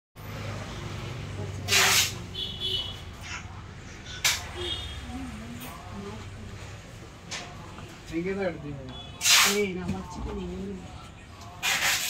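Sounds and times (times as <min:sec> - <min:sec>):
faint voices: 0:00.4 - 0:12.0.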